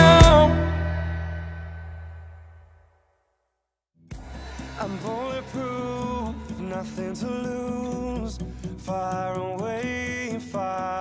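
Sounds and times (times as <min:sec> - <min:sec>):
acoustic guitar chord ringing: 0:00.0 - 0:02.6, 0:04.1 - 0:11.0.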